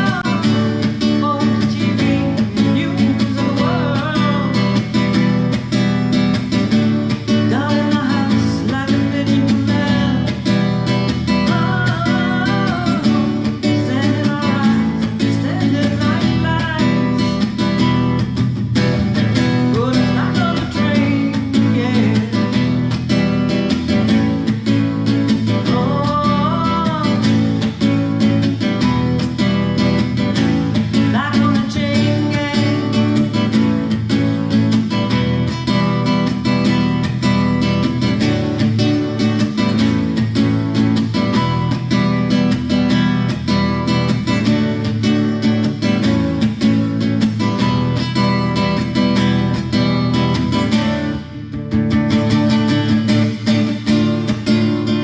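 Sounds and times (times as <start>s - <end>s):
woman singing: 0.0s - 6.0s, 6.7s - 18.5s, 19.2s - 41.9s, 52.0s - 55.0s
acoustic guitar strumming: 0.0s - 55.0s.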